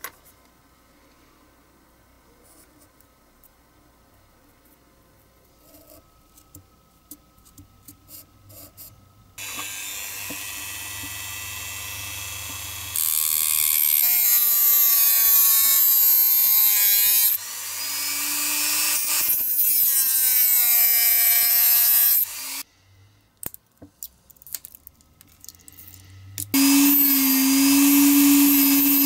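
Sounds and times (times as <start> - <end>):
rotary tool cutting plastic: 26.6 - 29.0.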